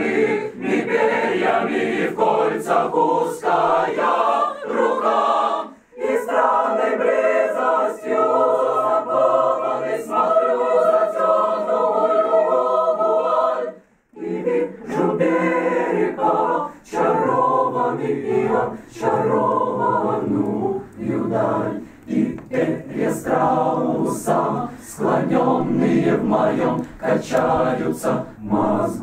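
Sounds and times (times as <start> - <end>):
mixed choir singing a cappella: 0.0 - 29.0.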